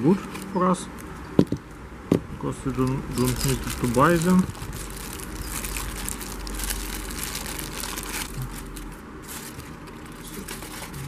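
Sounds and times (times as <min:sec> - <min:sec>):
plastic wrapping crinkling: 0:02.7 - 0:11.0.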